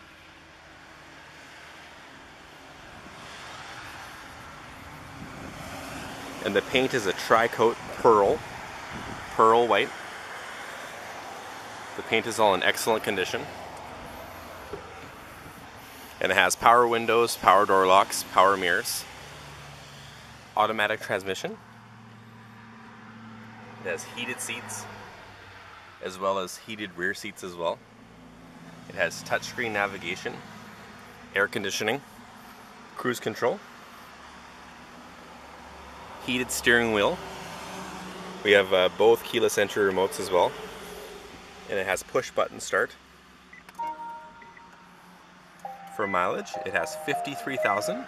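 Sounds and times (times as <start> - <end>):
man speaking: 6.4 - 8.4, 9.4 - 9.9, 12.0 - 13.5, 16.2 - 19.0, 20.6 - 21.6, 23.8 - 24.8, 26.0 - 27.8, 28.9 - 30.4, 31.4 - 32.0, 45.8 - 48.0
car power-on chime: 43.5 - 45.0, 45.6 - 48.0
lower electronic tone: 43.8 - 48.0
steady electronic tone: 43.8 - 48.0.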